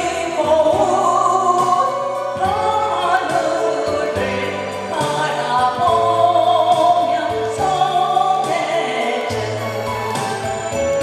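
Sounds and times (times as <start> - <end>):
woman singing into a microphone: 0.0 - 10.8
backing track with bass line: 0.0 - 11.0.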